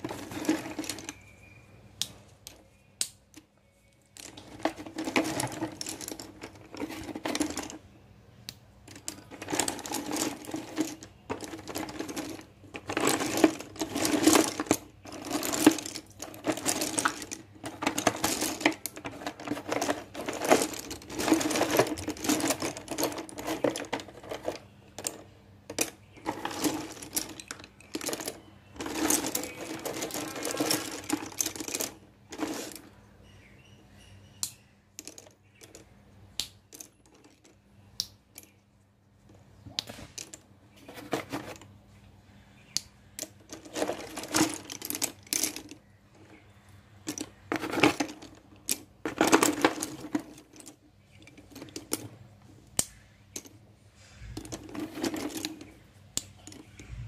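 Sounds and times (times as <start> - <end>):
slate pencils clattering in a box: 0.0 - 8.0, 8.8 - 33.0, 34.4 - 37.6, 39.3 - 41.7, 42.8 - 57.0.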